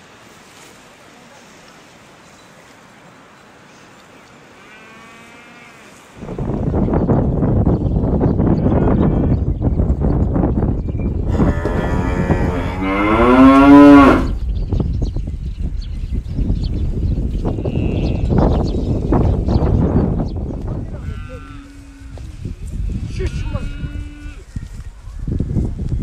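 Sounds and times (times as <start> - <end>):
wind rumbling on microphone: 6.1 - 26.0
yak mooing: 11.3 - 14.4.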